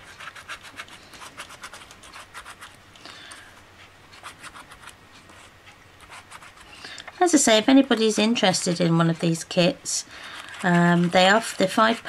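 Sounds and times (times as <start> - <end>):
stylus scratching paper: 0.0 - 2.8, 4.1 - 12.0.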